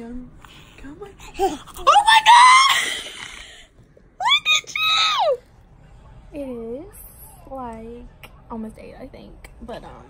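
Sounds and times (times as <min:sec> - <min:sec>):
person squealing excitedly: 0:01.9 - 0:03.2, 0:04.2 - 0:05.4.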